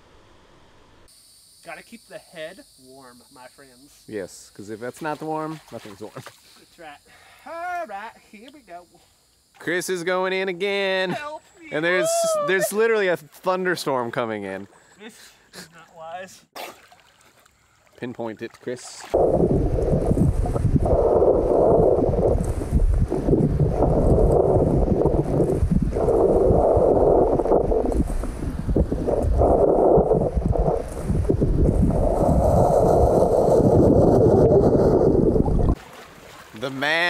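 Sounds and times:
muffled underwater river rumble: 0:19.2 - 0:35.8.

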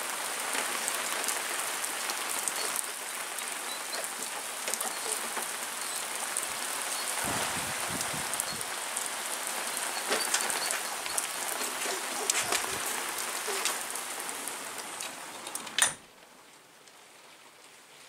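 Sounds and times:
heavy rain on paving: 0:00.0 - 0:18.0.

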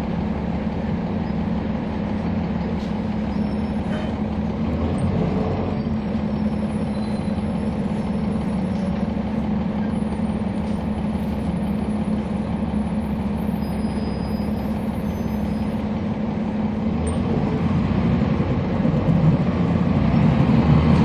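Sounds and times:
bus diesel engine drone: 0:00.0 - 0:21.0.

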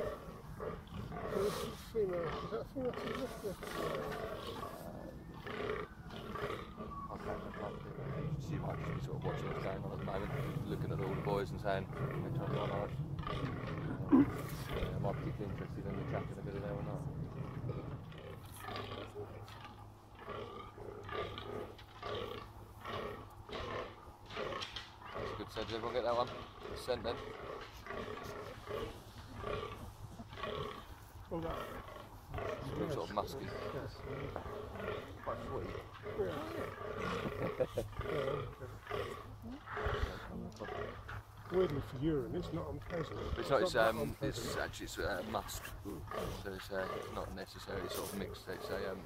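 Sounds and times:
deer grunting: 0:00.0 - 0:49.0.

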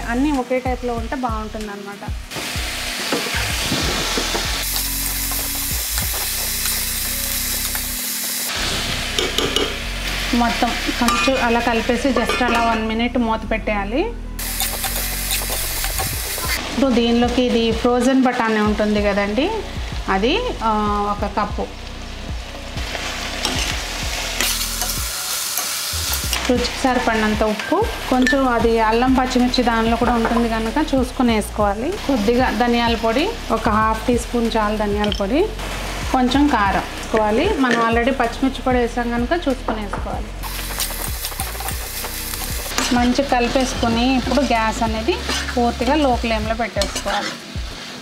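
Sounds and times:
vegetables sizzling in hot oil: 0:00.0 - 0:13.2, 0:14.4 - 0:48.0
spoon scraping and clacking on pan: 0:09.2 - 0:09.8, 0:14.5 - 0:16.6, 0:40.5 - 0:44.4, 0:45.2 - 0:45.6, 0:46.8 - 0:47.4
spatula scraping metal pan: 0:45.1 - 0:45.7, 0:46.8 - 0:47.5.

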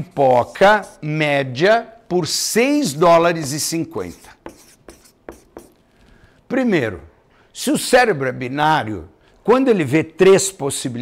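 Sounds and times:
marker writing on paper: 0:00.0 - 0:01.1, 0:03.4 - 0:05.8.

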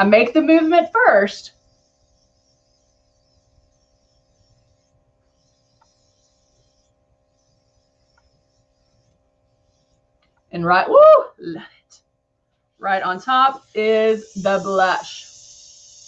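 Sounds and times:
airbrush spraying hiss: 0:00.0 - 0:09.2, 0:13.0 - 0:16.0
faint steady hum: 0:00.0 - 0:16.0.

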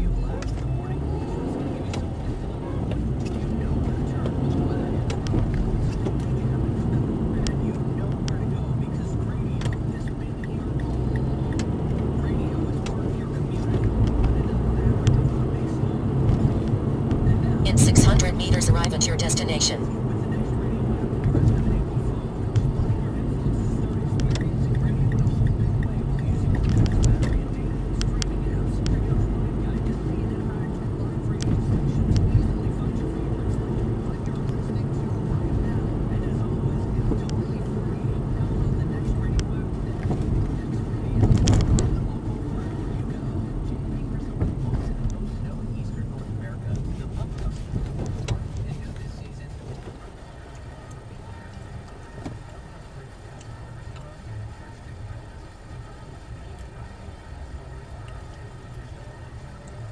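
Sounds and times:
car engine and tyres rumbling: 0:00.0 - 0:18.4, 0:19.8 - 0:59.9.

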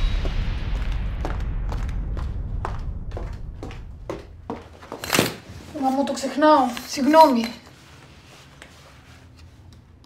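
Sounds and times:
low rumble: 0:00.0 - 0:04.6
footsteps on a floor: 0:00.0 - 0:09.3
woman speaking: 0:05.7 - 0:07.7.

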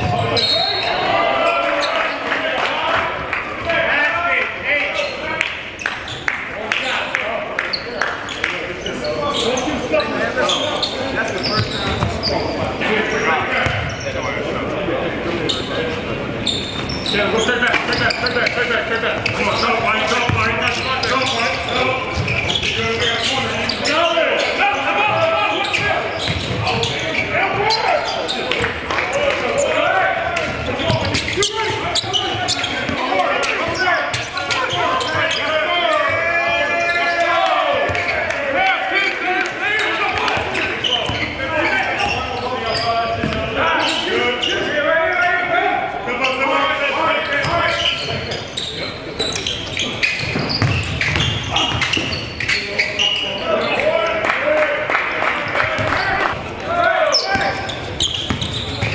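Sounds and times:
players calling out: 0:00.0 - 0:58.9
basketball bouncing on hardwood: 0:50.3 - 0:51.4.

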